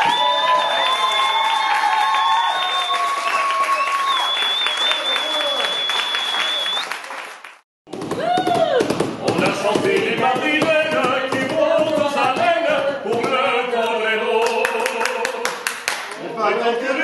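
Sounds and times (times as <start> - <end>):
audience clapping and calling out: 0.0 - 7.6, 14.4 - 16.3.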